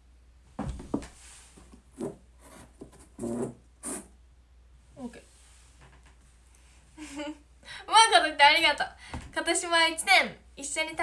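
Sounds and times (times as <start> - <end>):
objects rubbing and scraping: 1.0 - 4.2.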